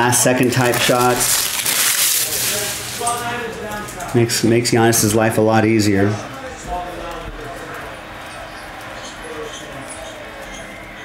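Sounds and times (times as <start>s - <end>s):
foil wrapper crinkling: 0.2s - 4.1s.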